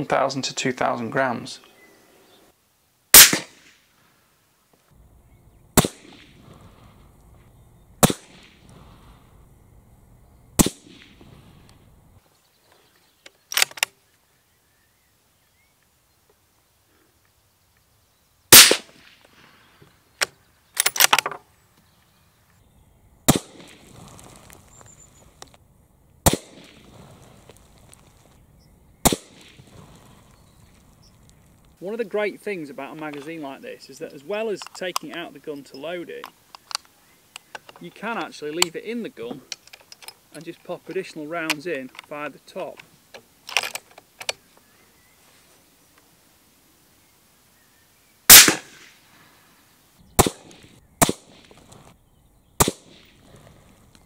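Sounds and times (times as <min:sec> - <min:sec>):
rifle shots: 0:03.1 - 0:03.8, 0:05.8 - 0:06.5, 0:08.0 - 0:08.6, 0:10.6 - 0:11.3, 0:18.5 - 0:19.2, 0:23.3 - 0:23.9, 0:26.2 - 0:27.0, 0:29.0 - 0:29.7, 0:48.3 - 0:49.0, 0:50.2 - 0:51.6, 0:52.6 - 0:53.2
faint gun handling noise: 0:10.9 - 0:14.3, 0:18.6 - 0:22.7, 0:33.0 - 0:33.4, 0:34.0 - 0:46.1.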